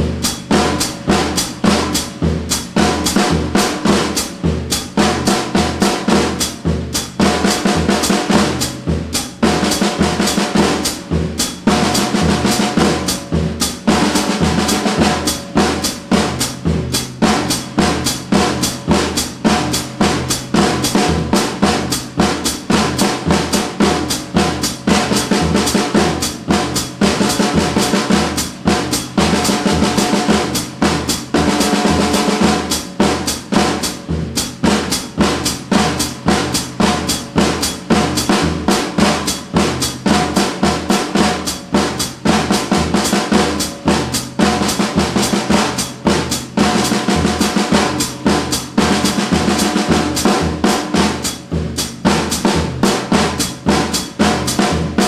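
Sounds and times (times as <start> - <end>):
drum kit playing: 0.0 - 55.0.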